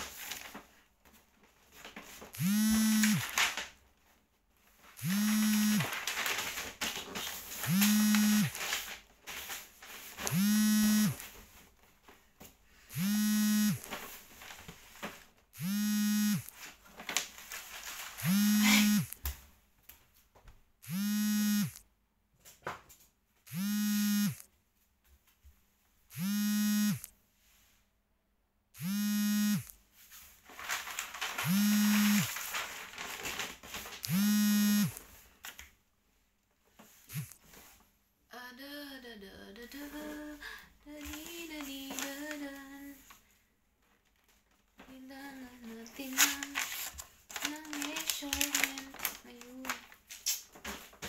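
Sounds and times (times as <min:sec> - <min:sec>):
low buzzing tone: 0:05.0 - 0:05.9, 0:10.3 - 0:11.2, 0:12.9 - 0:13.8, 0:15.6 - 0:16.5, 0:20.8 - 0:21.8, 0:23.5 - 0:24.4, 0:26.1 - 0:27.0, 0:28.8 - 0:29.7, 0:31.4 - 0:32.3, 0:34.1 - 0:35.0.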